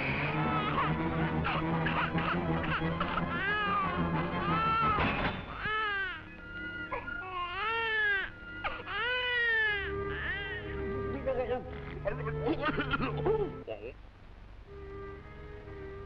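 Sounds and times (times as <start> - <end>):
background music: 0.0 - 16.0
cartoon baby crying: 0.5 - 10.8.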